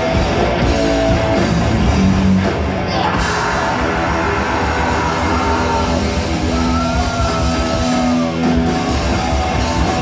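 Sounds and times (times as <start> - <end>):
hardcore punk band playing: 0.0 - 10.0.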